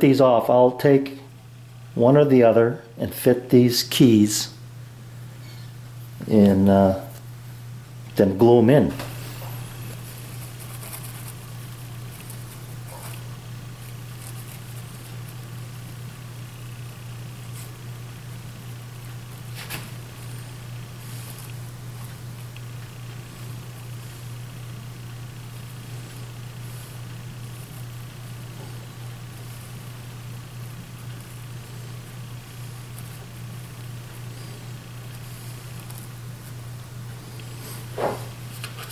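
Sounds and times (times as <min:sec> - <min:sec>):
steady low hum: 0:00.0 - 0:38.9.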